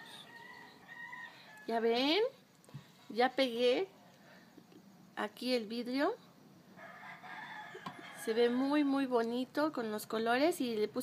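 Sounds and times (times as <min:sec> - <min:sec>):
woman speaking: 0:01.7 - 0:02.4, 0:03.1 - 0:04.0, 0:05.2 - 0:06.3, 0:08.2 - 0:11.0.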